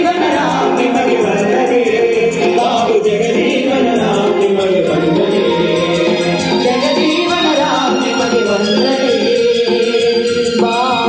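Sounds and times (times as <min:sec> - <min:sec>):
group singing over music: 0:00.0 - 0:11.0
percussion beat: 0:00.0 - 0:11.0.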